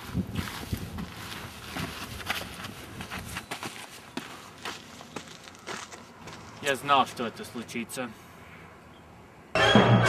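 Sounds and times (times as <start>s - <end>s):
footsteps crunching on gravel: 0.0s - 7.6s.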